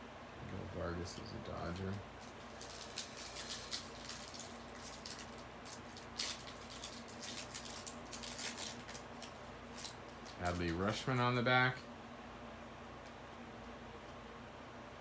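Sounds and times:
faint room hum: 0.0 - 15.0
foil wrapper crinkling: 1.6 - 11.8.

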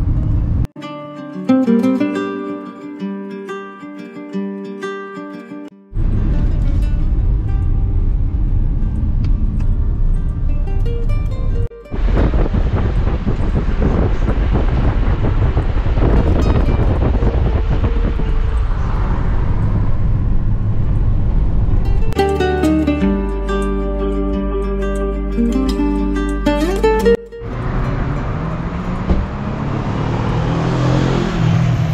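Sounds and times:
car cabin road and engine rumble: 0.0 - 0.7, 6.0 - 22.2, 27.4 - 31.9
acoustic guitar music: 0.6 - 18.8, 21.8 - 29.1.

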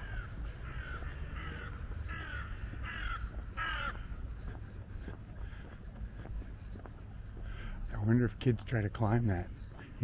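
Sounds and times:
crow cawing: 0.0 - 4.2, 5.4 - 5.9.

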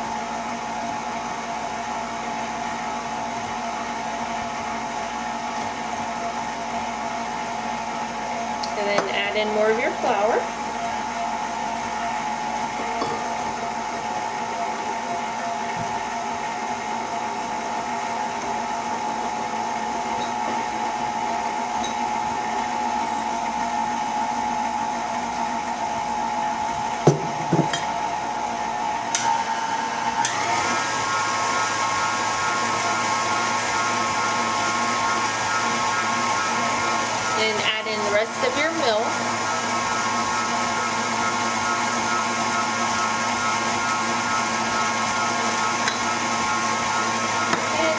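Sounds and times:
electric stand mixer whisking: 0.0 - 47.9.

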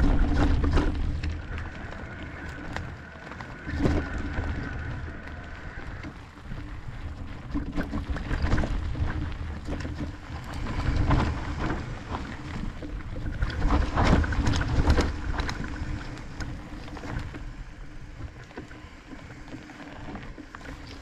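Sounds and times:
bike knocking and rattling: 0.0 - 21.0
bike tyres rumbling on dirt: 0.0 - 21.0
wind on microphone: 0.0 - 21.0.

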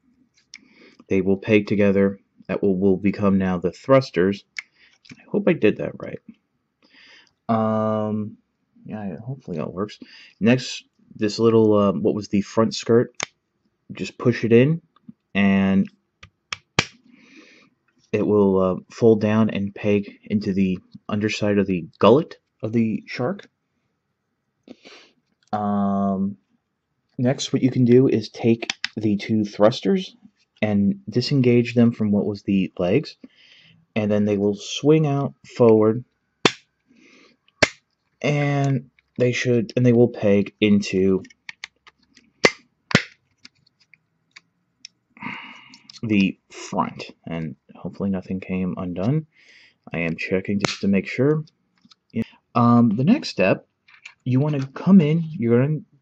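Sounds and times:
sharp plastic snaps: 16.2 - 17.0, 28.6 - 29.0, 36.4 - 36.7, 37.5 - 38.0, 41.2 - 45.0
plastic parts clicking: 28.6 - 29.0, 41.2 - 44.5.

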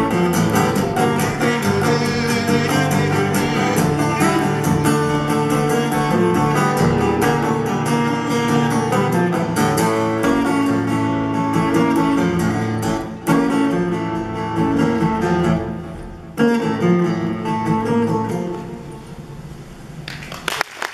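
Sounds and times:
acoustic guitar strumming: 0.0 - 19.7.

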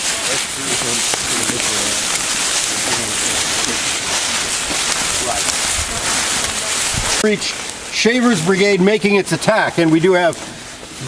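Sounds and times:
footsteps crunching dry leaves: 0.0 - 11.0
indistinct chatter: 0.0 - 11.0.

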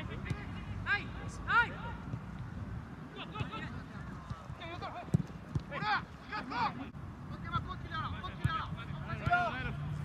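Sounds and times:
ball being kicked: 5.0 - 5.8.

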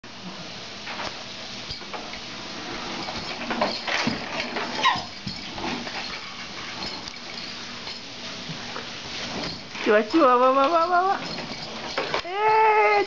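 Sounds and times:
baby walker rolling on wooden floor: 2.6 - 7.4, 9.2 - 13.0.

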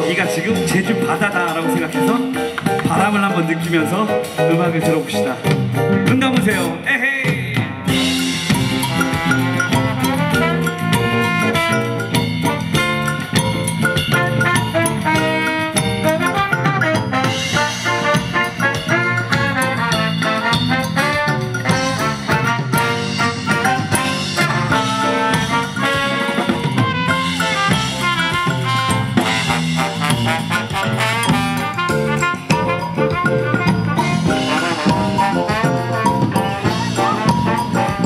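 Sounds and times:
congas: 0.0 - 38.0
drum kit: 0.0 - 38.0
electric guitar: 7.7 - 38.0
saxophones: 8.0 - 38.0.

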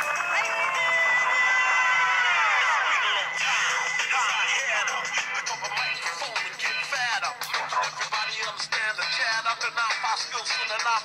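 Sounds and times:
pop song: 0.0 - 11.0.

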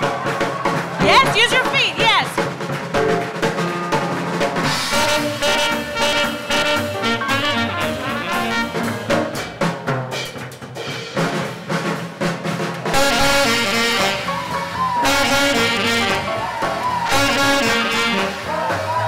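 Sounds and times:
swing jazz band: 0.0 - 19.0.

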